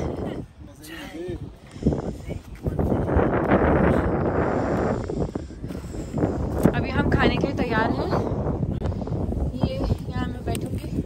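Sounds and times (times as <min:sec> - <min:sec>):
wind blowing across microphone: 0:00.0 - 0:11.0.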